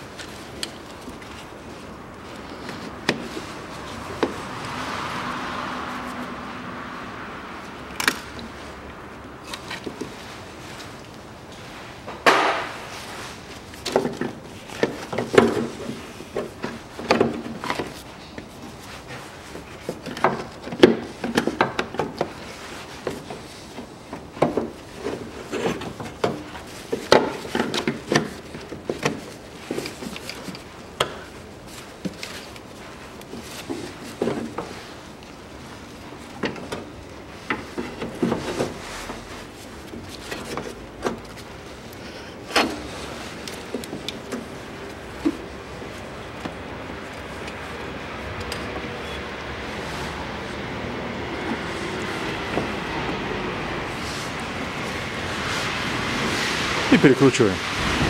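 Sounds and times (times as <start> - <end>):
soft rustling: 22.3 - 48.7, 49.6 - 56.6.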